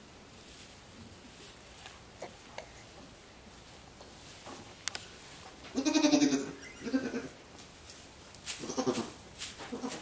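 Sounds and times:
goat bleating: 5.7 - 7.4, 8.6 - 10.0.

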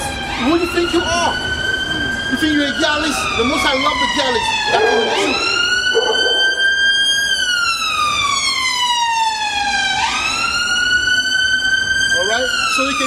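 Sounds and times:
emergency siren wailing: 0.0 - 13.0.

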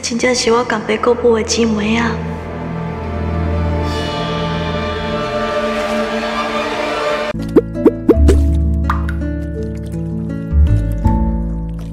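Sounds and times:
dramatic underscore music: 0.0 - 11.9.

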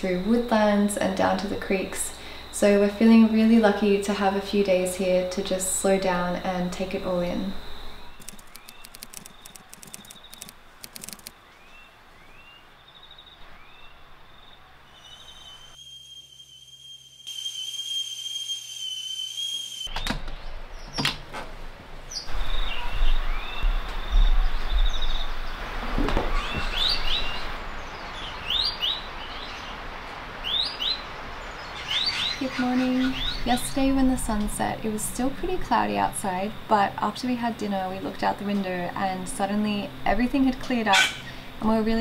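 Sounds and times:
small birds chirping: 7.9 - 15.8, 30.4 - 34.0
sharp clicks: 8.2 - 11.4.

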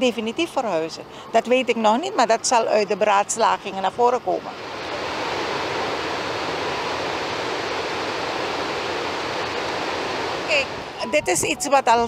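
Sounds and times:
water rushing through spillway: 3.3 - 11.2.

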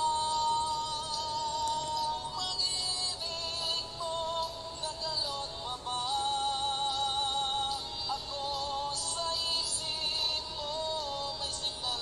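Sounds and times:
love song with held notes: 0.0 - 12.0.

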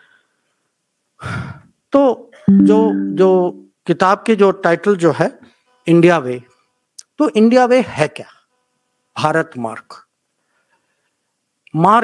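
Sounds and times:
man speaking: 2.5 - 3.6.

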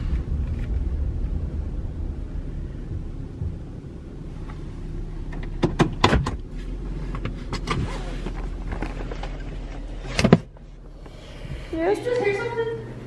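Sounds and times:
road rumble inside car: 0.0 - 13.0
sharp clicks and knocks: 5.3 - 6.5.

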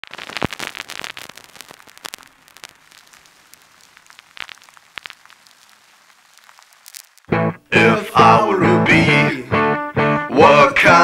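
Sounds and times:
vinyl surface noise crackle: 0.0 - 7.4.

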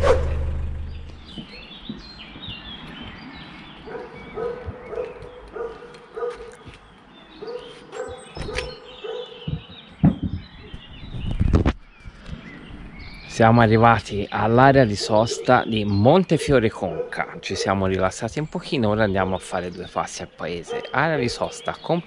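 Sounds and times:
small birds chirping: 0.0 - 22.0
dog barking: 3.8 - 6.6, 7.4 - 9.5, 16.8 - 17.8, 20.6 - 21.0.

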